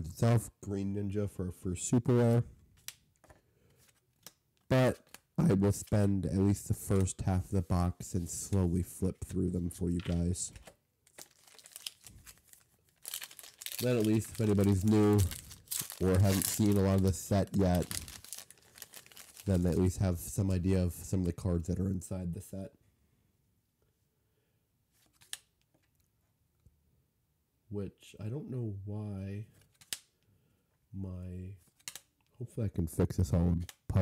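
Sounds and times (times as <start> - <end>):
foil wrapper crinkling: 11.1 - 19.9.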